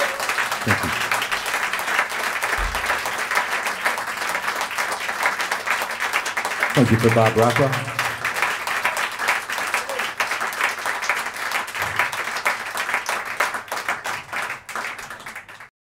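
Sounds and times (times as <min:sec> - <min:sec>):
audience applauding: 0:00.0 - 0:15.7.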